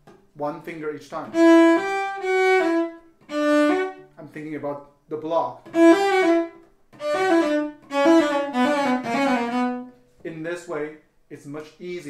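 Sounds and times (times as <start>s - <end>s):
bowed cello fast runs: 5.7s - 9.9s.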